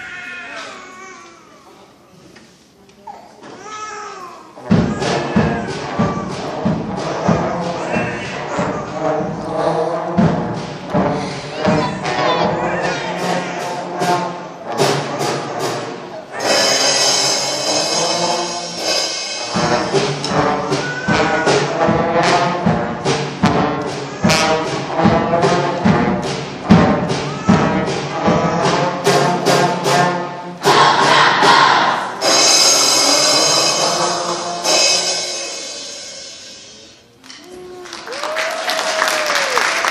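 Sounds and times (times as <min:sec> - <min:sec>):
drum hits: 0:04.6 - 0:36.8
trombones: 0:04.6 - 0:36.8
concert band brass music: 0:04.6 - 0:37.1.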